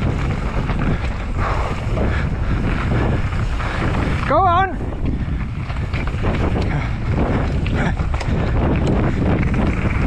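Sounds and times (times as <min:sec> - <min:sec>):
tyres rolling on dirt trail: 0:00.0 - 0:10.0
wind noise on microphone: 0:00.0 - 0:10.0.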